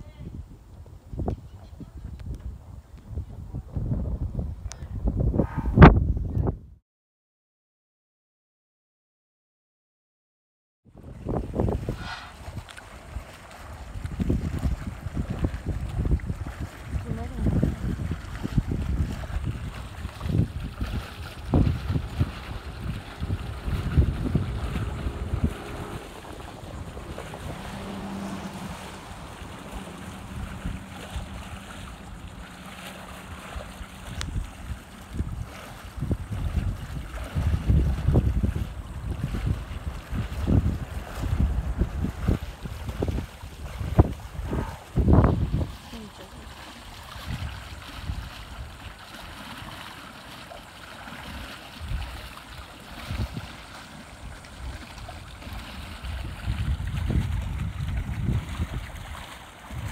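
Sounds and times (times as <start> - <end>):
wind buffeting microphone: 0.0 - 6.8, 10.9 - 49.9, 51.2 - 59.9.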